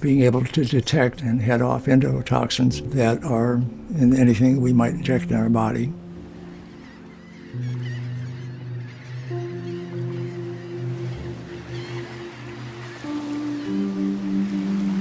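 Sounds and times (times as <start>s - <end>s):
faint bird calls: 6.2s - 15.0s.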